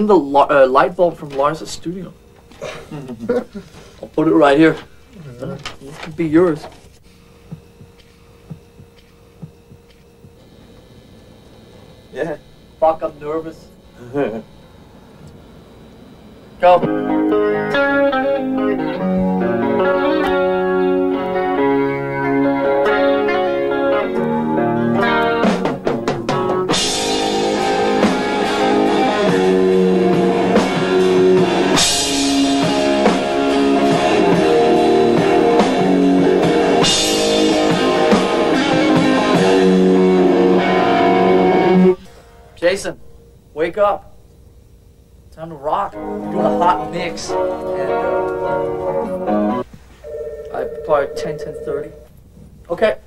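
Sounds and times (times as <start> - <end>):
electric guitar riff: 16.6 - 42.1, 45.9 - 49.6
drum kit: 24.0 - 42.0.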